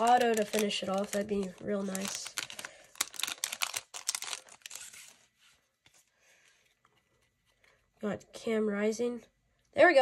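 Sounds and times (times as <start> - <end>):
foil wrapper crinkling: 0.0 - 5.3
faint rustling of cards: 0.0 - 8.5.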